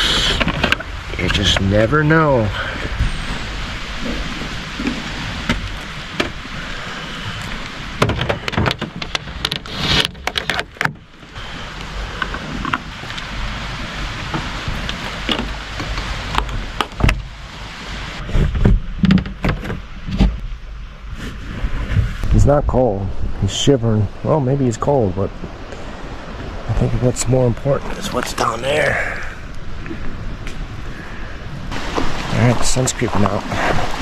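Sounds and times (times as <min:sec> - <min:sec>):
rain pattering on a van: 0:00.4 - 0:18.2
knocks and clatter: 0:08.0 - 0:11.0.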